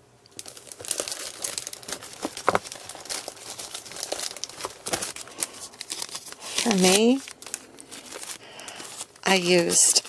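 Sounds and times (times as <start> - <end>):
plastic sleeves crinkling: 0.3 - 10.0.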